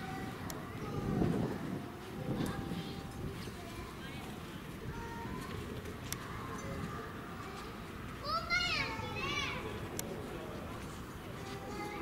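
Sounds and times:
murmur of people: 0.0s - 12.0s.

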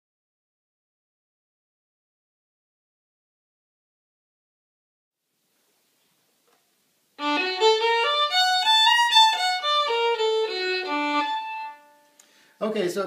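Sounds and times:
solo fiddle jazz lick: 7.2s - 12.4s.

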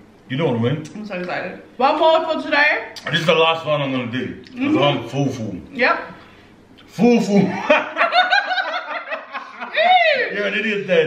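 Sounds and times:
woman and man laughing: 7.5s - 10.3s.

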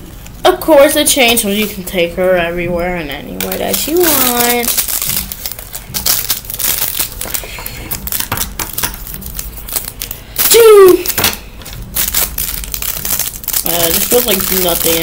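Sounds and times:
plastic wrapper crinkling: 3.2s - 15.0s.

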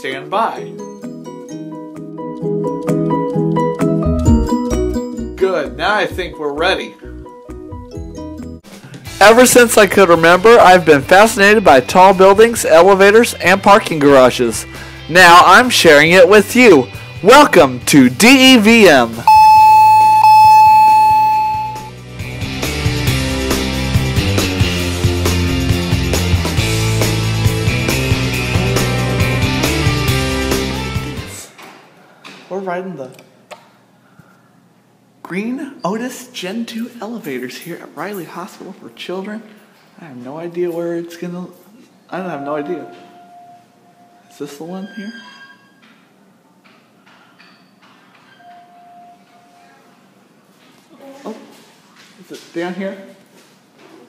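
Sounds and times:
background music: 0.0s - 31.5s, 42.2s - 44.3s
chime tone ringing: 19.3s - 21.9s, 42.4s - 44.3s.

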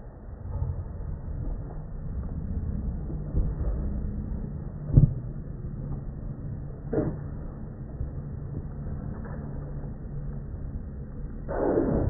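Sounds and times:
low rumble: 0.0s - 12.0s.

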